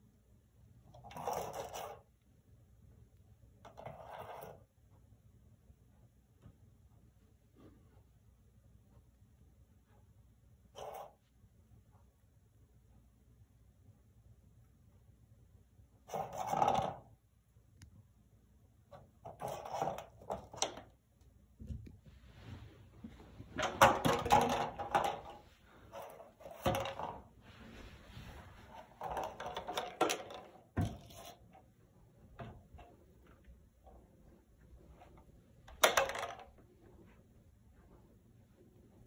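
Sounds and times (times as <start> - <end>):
plastic container clattering: 23.4 - 27.4.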